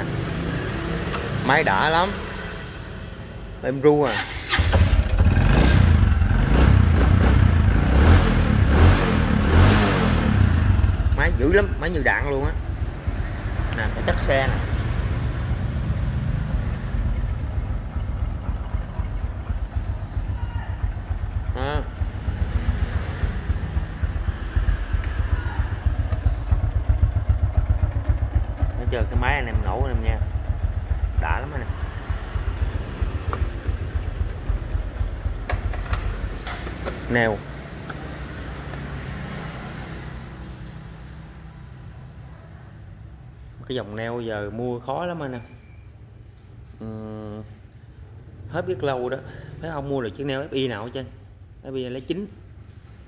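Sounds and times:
small motorcycle engine idling: 0:15.3 - 0:39.0.

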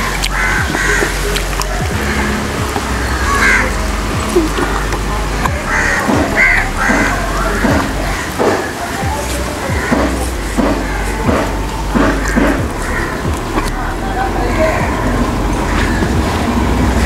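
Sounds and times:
background music with steady beat: 0:00.0 - 0:17.0
short calls: 0:00.0 - 0:17.0.

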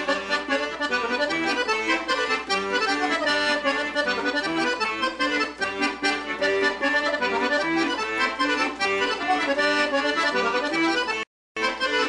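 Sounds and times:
accordion playing polka: 0:00.0 - 0:12.0.

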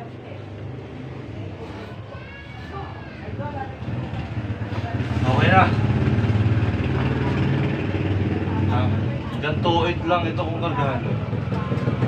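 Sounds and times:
small engine idling: 0:03.3 - 0:12.0.

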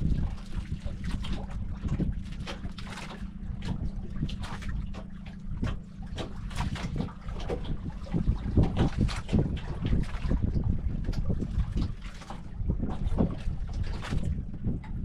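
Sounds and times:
water lapping against boat hull: 0:00.0 - 0:15.0
wind buffeting microphone: 0:00.0 - 0:15.0.

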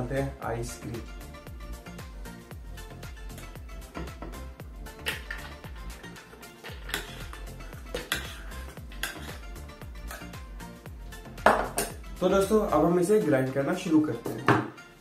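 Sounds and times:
background music with steady beat: 0:00.0 - 0:15.0
metal spoon clinking: 0:05.0 - 0:09.4, 0:10.0 - 0:10.4.

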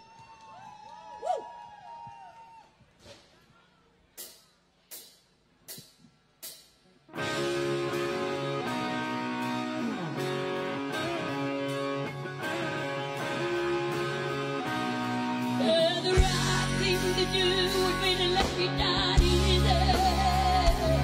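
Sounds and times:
drums: 0:00.0 - 0:21.0
electric guitar chords: 0:07.1 - 0:21.0.

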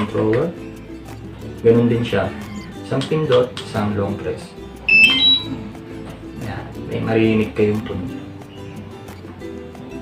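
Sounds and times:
background music: 0:00.0 - 0:10.0
rising high beeps: 0:04.9 - 0:05.6.

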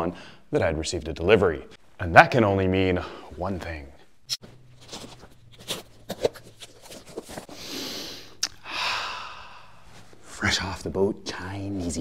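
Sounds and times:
low steady hum: 0:00.1 - 0:12.0
box flap rustling open: 0:04.8 - 0:07.6.

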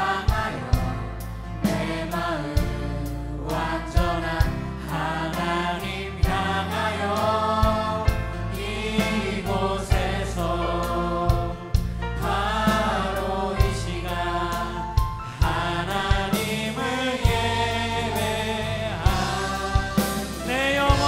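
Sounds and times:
choir singing: 0:00.0 - 0:21.0
instrumental accompaniment: 0:05.4 - 0:21.0.

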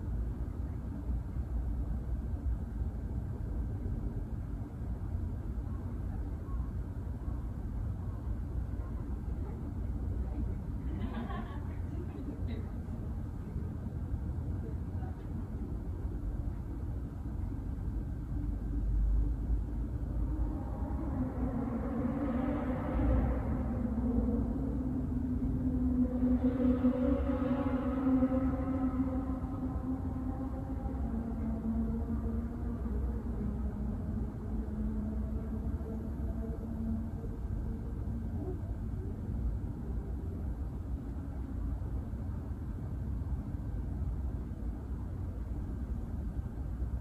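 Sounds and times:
steady low rumble: 0:00.0 - 0:47.0.

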